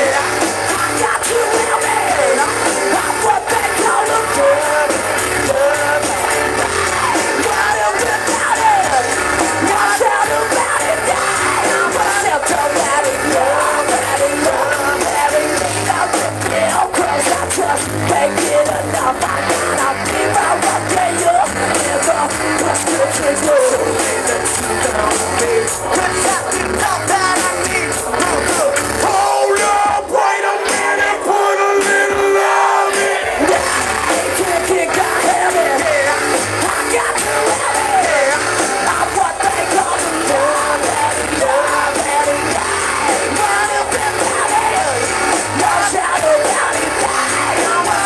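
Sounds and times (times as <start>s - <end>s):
live rock band playing loudly: 0.0s - 48.0s
person singing: 0.0s - 48.0s.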